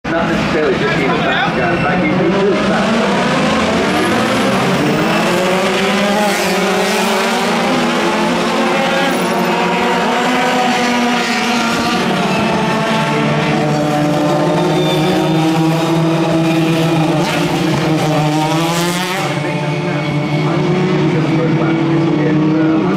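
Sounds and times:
race car engines revving: 0.1s - 22.9s.

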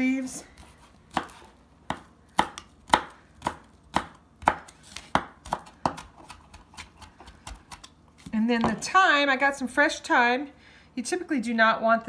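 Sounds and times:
knife chopping on cutting mat: 0.6s - 8.8s.

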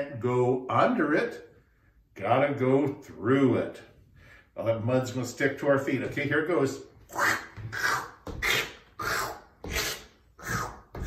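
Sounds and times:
man making squelching mouth sounds: 7.0s - 10.9s.

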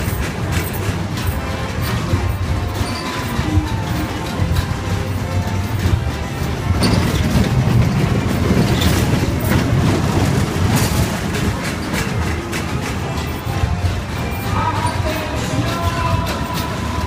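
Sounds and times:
music playing: 0.0s - 17.0s
roller coaster cars rumbling: 0.0s - 17.0s.

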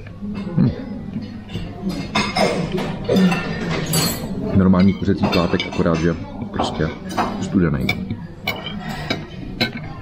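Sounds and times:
restaurant background: 0.0s - 10.0s
cutlery clinking on china: 1.3s - 10.0s.

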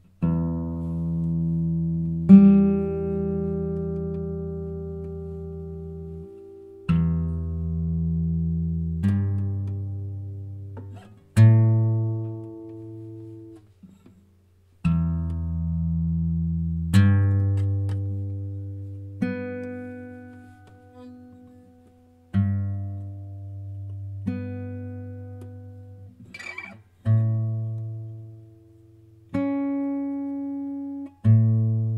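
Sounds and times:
guitar chords ringing: 0.2s - 13.7s, 14.8s - 31.9s.

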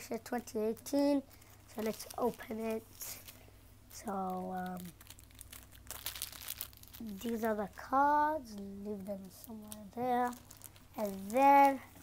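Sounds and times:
plastic packaging crinkling: 0.2s - 12.0s.

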